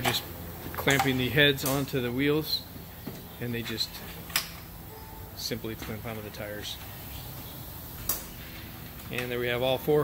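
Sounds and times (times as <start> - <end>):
low hum: 0.2 - 9.2.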